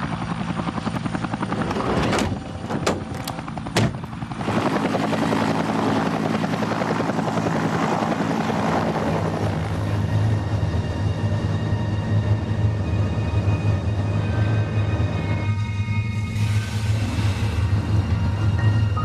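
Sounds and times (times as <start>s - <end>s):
helicopter rotor chopping: 0.0s - 10.6s
sharp knocks: 2.0s - 4.1s.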